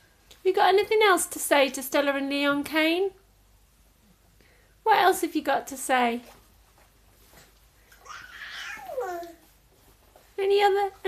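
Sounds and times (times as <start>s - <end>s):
baby vocalizing: 7.9s - 9.5s.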